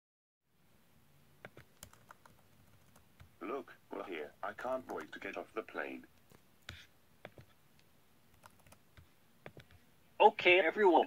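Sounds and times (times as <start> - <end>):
faint keyboard keystrokes: 1.4 - 3.3, 8.3 - 9.8
text-to-speech voice talking: 3.4 - 6.1, 10.2 - 11.0.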